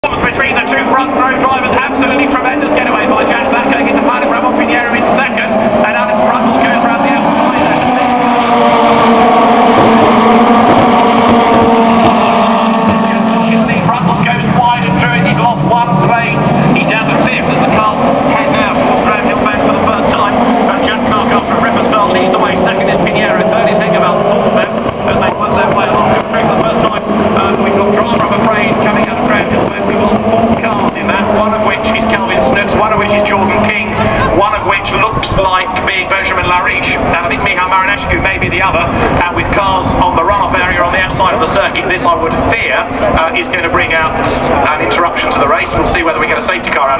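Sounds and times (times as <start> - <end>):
racing car engines: 0.0 - 46.9.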